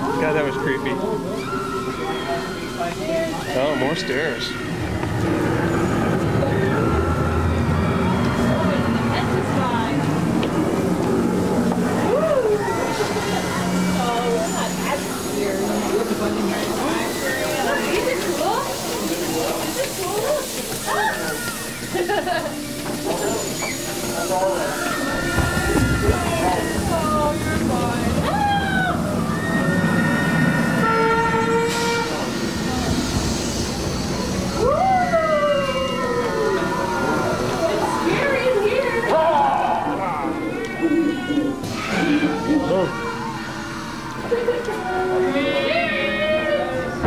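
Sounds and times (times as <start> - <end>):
wailing cries and voices: 0.0 - 47.0.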